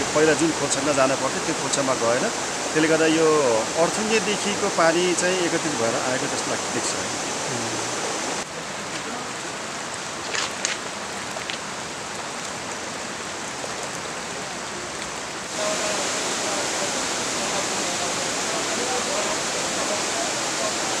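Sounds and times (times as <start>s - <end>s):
floodwater rushing: 0.0s - 21.0s.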